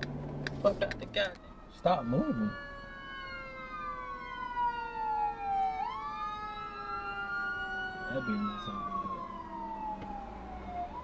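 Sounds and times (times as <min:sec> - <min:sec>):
siren wailing: 0:00.9 - 0:11.0.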